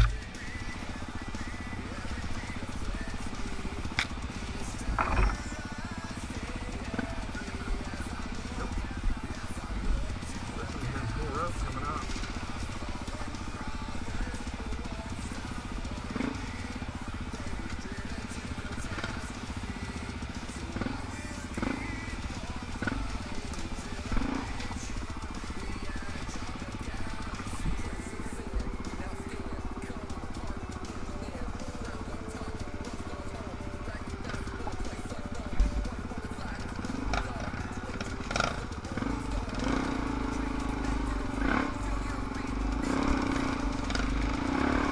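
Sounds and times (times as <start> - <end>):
dirt bike engine running: 0.0 - 44.9.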